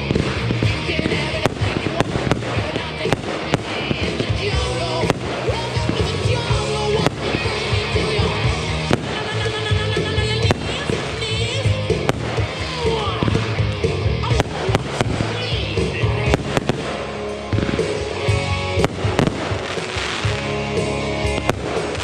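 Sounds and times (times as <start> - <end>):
fireworks bursting: 0.0 - 22.0
music: 0.0 - 22.0.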